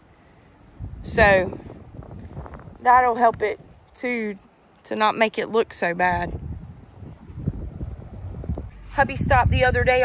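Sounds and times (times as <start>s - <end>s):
wind buffeting microphone: 0.0s - 3.9s, 5.6s - 10.0s.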